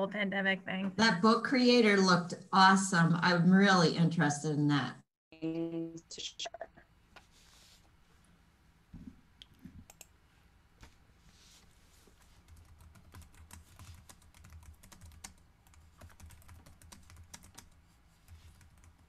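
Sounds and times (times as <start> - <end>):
computer keyboard typing: 9.8 - 10.1, 12.4 - 19.0.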